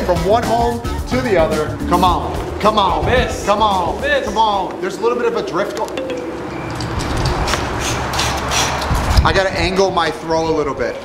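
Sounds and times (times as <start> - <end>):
wind on microphone: 1.7 - 4.2, 6.7 - 10.8.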